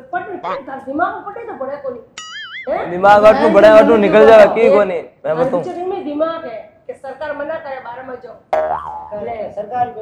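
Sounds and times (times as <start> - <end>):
cartoon boing sound effect: 2.2 - 2.7, 8.6 - 9.4.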